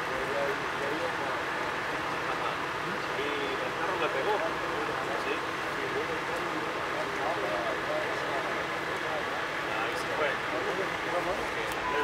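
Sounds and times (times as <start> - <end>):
idling vehicle engines hum: 0.0 - 12.0
people talking indistinctly: 0.0 - 12.0.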